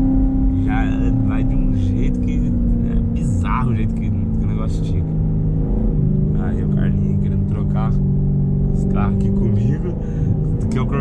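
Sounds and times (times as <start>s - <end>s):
car engine drone in cabin: 0.0s - 11.0s.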